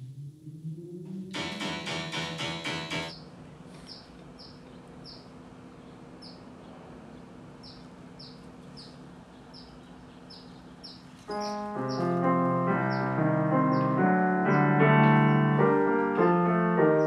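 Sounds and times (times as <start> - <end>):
piano music: 1.1 - 3.1, 11.3 - 17.0
small bird chirping: 3.1 - 12.2, 12.8 - 13.1, 13.7 - 15.3
faint background hum: 3.1 - 17.0.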